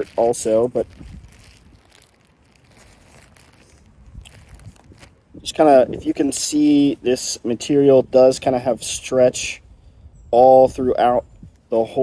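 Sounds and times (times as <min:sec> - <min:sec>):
fabric rustling: 0:00.0 - 0:05.3.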